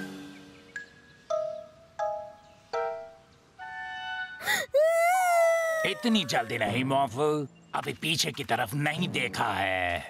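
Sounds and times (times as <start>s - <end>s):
cartoon character crying: 4.4s - 6.8s.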